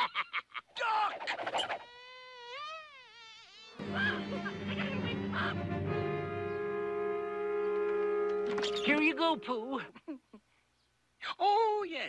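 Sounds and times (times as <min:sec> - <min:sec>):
cartoon bee buzzing: 0:01.5 - 0:05.1
music: 0:03.8 - 0:09.5.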